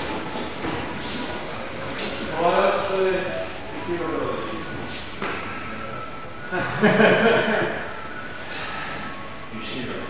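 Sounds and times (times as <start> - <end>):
faint voices in a hall: 0.0 - 10.0.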